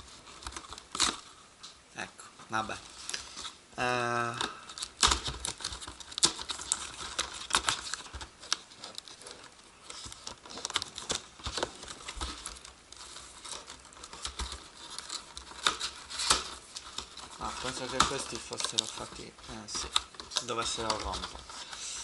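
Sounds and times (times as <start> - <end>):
plastic packaging crinkling: 0.0 - 1.4, 2.7 - 22.0
cardboard box crackling and scraping: 2.9 - 22.0.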